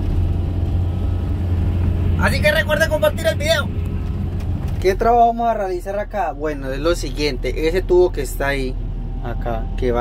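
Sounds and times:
excavator diesel engine droning: 0.0s - 10.0s.

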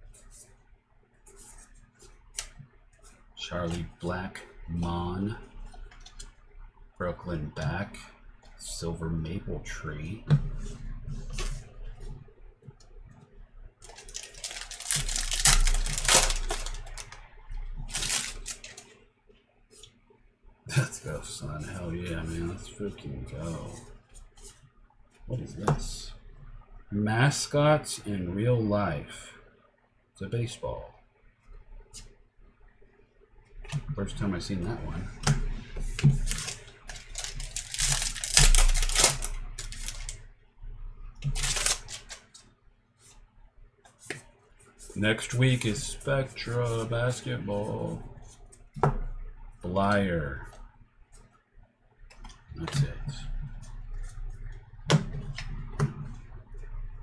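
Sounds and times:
papery rustle of cards: 13.8s - 17.2s, 17.8s - 19.0s, 35.8s - 40.2s, 41.3s - 43.2s, 43.9s - 48.4s
wrapper tearing and crinkling: 13.8s - 17.2s, 17.8s - 18.9s, 36.2s - 40.2s, 41.3s - 42.3s
cards clicking and sliding: 41.4s - 42.3s.

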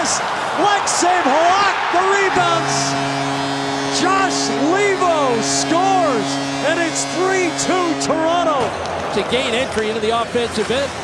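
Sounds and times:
crowd cheering: 0.0s - 10.6s
goal horn blast: 0.3s - 9.0s.

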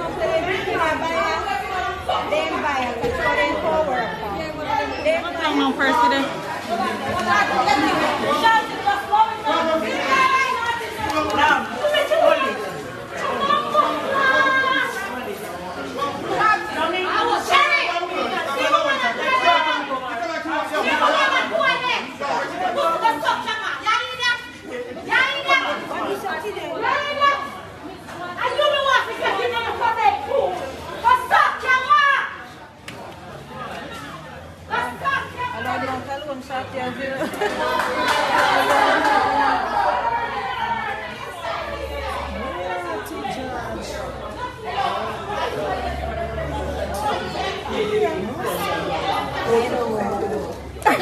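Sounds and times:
people arguing loudly: 0.0s - 32.6s, 33.6s - 51.0s
people talking over one another: 0.0s - 51.0s.

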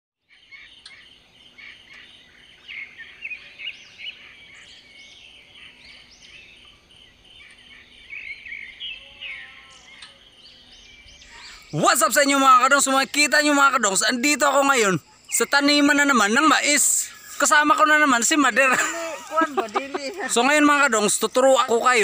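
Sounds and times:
birds chirping: 0.2s - 22.0s
faint outdoor background noise: 0.2s - 22.0s.

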